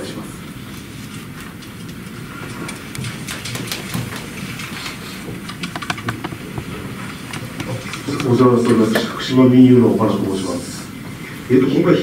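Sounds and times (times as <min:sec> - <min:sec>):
rustling and clicking handling noises: 0:01.1 - 0:09.1.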